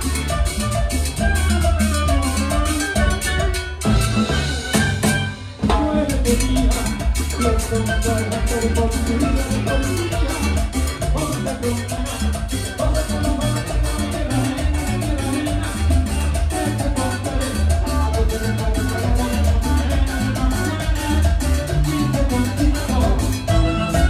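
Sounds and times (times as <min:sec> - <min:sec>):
latin dance band playing: 0:00.0 - 0:24.0.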